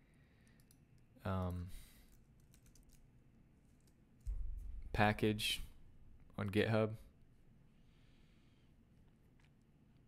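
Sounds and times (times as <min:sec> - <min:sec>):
keyboard typing: 0:00.4 - 0:03.0.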